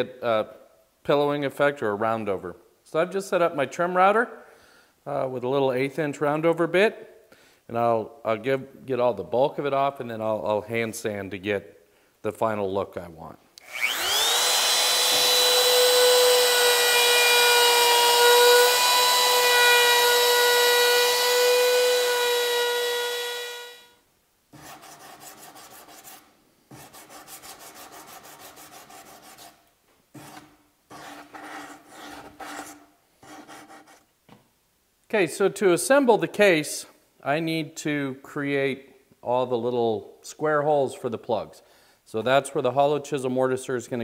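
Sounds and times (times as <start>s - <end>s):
router whining: 13.6s - 23.9s
hand sanding wood: 24.6s - 29.6s, 30.2s - 34.1s.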